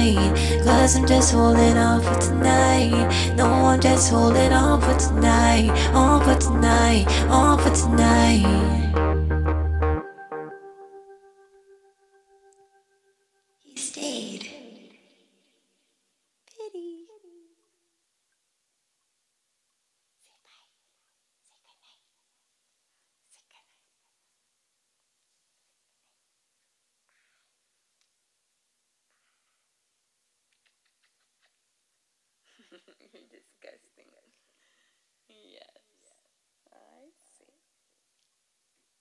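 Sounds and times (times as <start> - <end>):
woman whispering softly: 20.2 - 20.8, 21.4 - 22.2, 23.2 - 24.1, 35.3 - 37.6.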